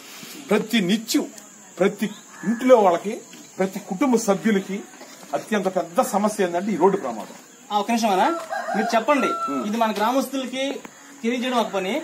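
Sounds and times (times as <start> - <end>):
rooster crowing: 8.1 - 10.0.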